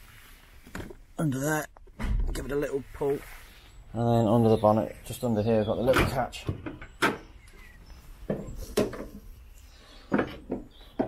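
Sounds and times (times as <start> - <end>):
metal bonnet knocks and clunks: 5.8 - 7.3, 8.3 - 9.3, 10.1 - 11.0.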